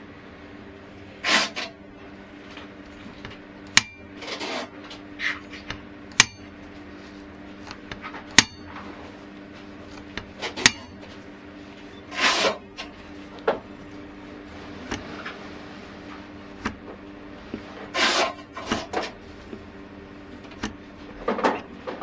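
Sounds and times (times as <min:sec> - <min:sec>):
hand handling noises: 0:01.2 - 0:22.0.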